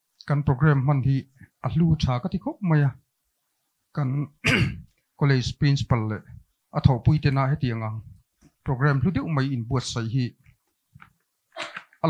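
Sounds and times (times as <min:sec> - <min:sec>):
man speaking over a microphone: 0:05.2 - 0:08.1, 0:08.7 - 0:10.4.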